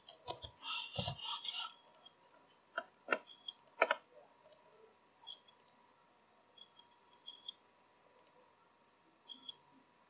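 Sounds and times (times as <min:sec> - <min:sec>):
computer mouse sliding on desk: 0:00.5 - 0:01.8.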